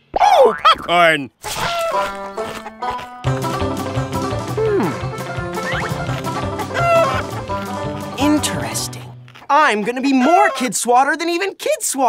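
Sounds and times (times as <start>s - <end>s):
cartoon music with steady beat: 2.2s - 9.3s.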